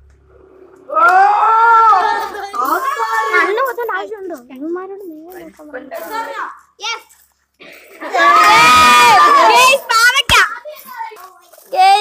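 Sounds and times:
boys shouting and cheering: 0.9 - 4.2, 5.8 - 7.1, 7.7 - 12.0.

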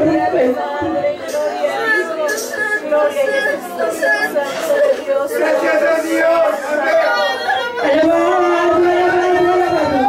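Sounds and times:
woman praying into microphone: 0.0 - 6.7, 7.7 - 10.0.

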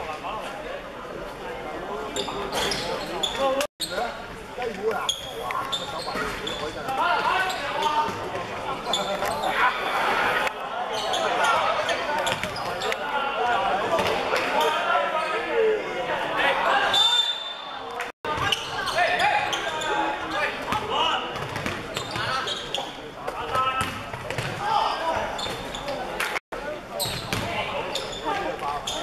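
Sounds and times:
sneakers squeaking: 2.1 - 4.2, 4.9 - 13.0, 16.8 - 26.1, 27.0 - 29.0.

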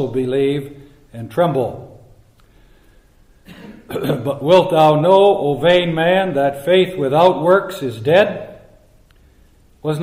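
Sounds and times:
man clearing his throat: 3.4 - 4.4.

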